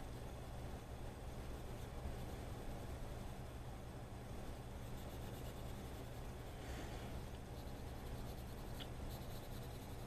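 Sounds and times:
faint low hum: 0.0 - 10.0
colored pencil scratching on paper: 1.4 - 2.9, 4.5 - 6.4, 7.5 - 10.0.

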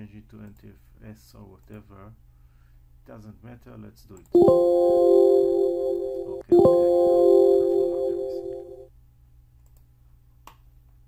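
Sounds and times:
faint mouse clicks: 0.4 - 0.7, 9.6 - 10.6
system chime chord: 4.4 - 8.9.

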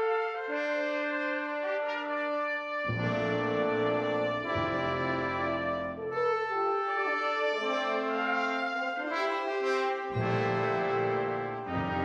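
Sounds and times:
brass fanfare chords: 0.0 - 12.0.

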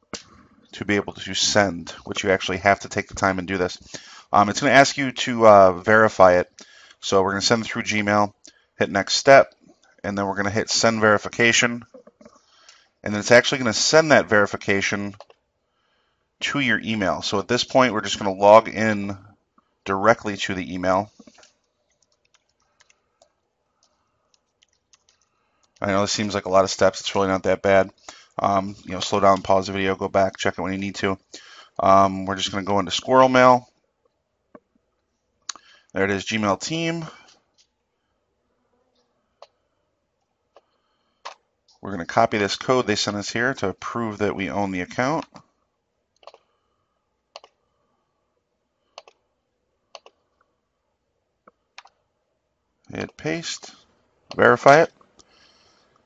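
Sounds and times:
computer mouse clicks: 21.2 - 25.8, 46.2 - 46.5, 47.3 - 47.6, 48.9 - 49.2, 49.9 - 50.5.

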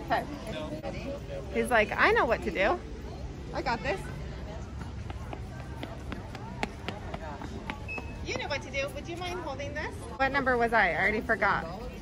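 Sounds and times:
child running on concrete: 4.8 - 8.2.

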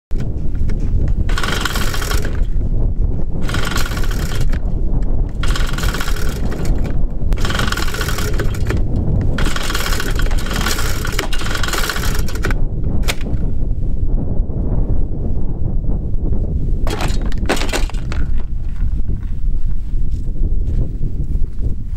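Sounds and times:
low rumble: 0.2 - 21.9
recoil starter pulls whirring: 1.3 - 2.6, 3.4 - 13.5, 16.9 - 18.4
sharp clicks: 3.4 - 13.4.

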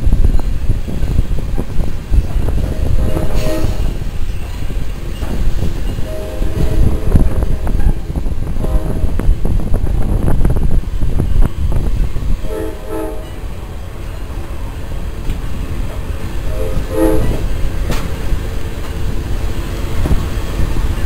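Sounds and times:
train rumbling on track: 0.0 - 21.0
train horn toots: 2.4 - 4.0, 6.0 - 9.3, 12.4 - 13.6, 16.4 - 17.6.

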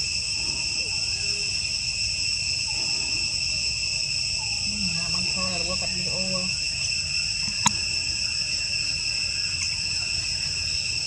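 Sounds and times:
insect chorus: 0.0 - 11.0.

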